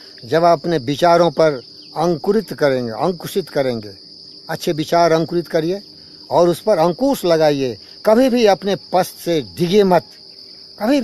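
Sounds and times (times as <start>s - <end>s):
insects chorus: 0.0s - 11.0s
man speaking: 0.2s - 10.1s, 10.8s - 11.0s.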